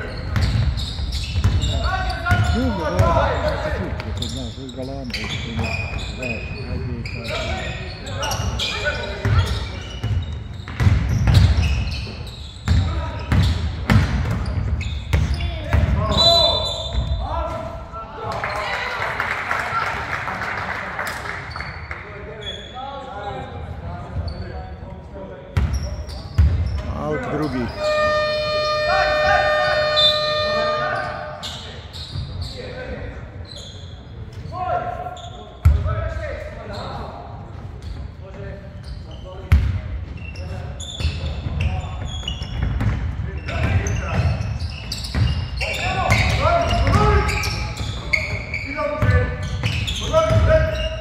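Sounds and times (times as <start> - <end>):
players' voices echoing: 0.0 - 51.0
scoreboard horn: 27.7 - 31.4.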